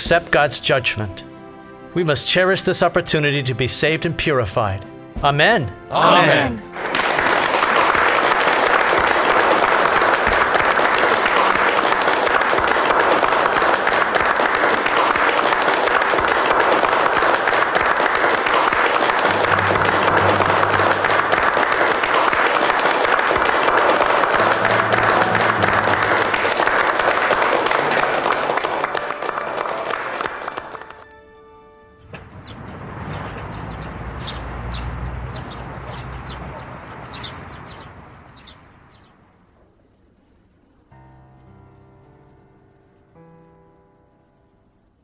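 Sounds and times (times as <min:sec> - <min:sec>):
soft background music: 0:00.0 - 0:07.6, 0:19.2 - 0:35.1, 0:40.9 - 0:45.0
people applauding: 0:06.0 - 0:31.5.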